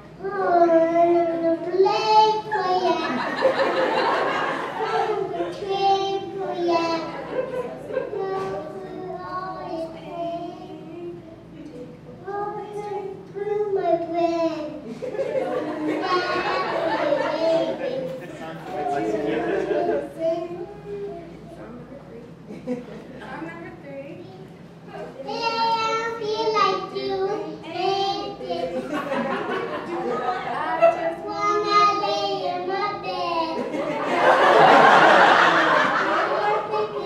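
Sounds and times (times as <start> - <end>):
background chatter: 0.0 - 37.0
child talking into a microphone: 0.2 - 3.2, 5.0 - 7.2, 8.0 - 14.8, 15.7 - 21.9, 23.5 - 28.9, 30.7 - 33.7, 36.3 - 37.0.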